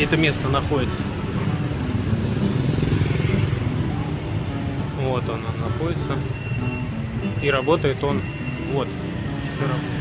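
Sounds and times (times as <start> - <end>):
motorbikes and cars driving past: 0.0 - 10.0.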